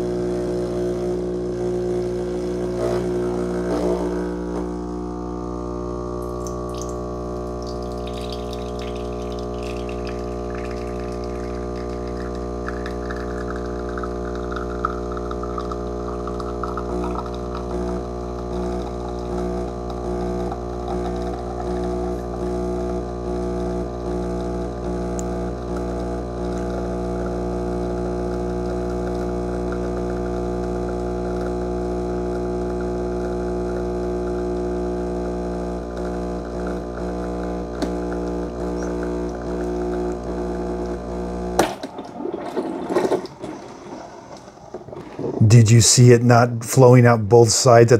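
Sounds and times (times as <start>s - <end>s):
espresso machine pump humming: 0.0s - 45.5s
espresso streaming into cup: 0.0s - 45.5s.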